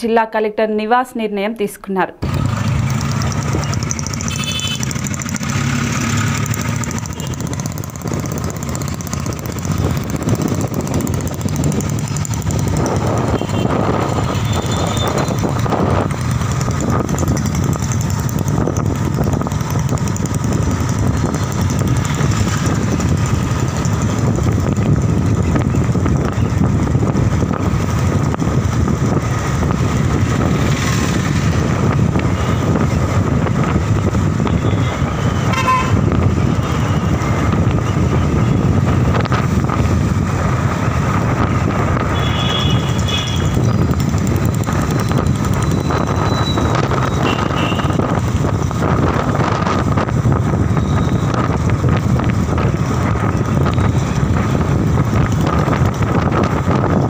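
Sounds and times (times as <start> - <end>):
motorbike engine and road noise: 2.2 - 57.0.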